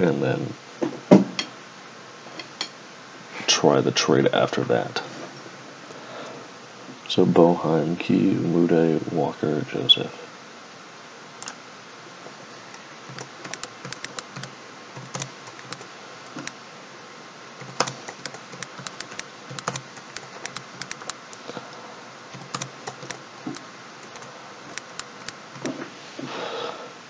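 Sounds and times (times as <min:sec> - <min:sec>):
keyboard typing clicks: 0:13.2 - 0:16.5, 0:17.6 - 0:21.2, 0:22.4 - 0:23.2, 0:24.1 - 0:25.3.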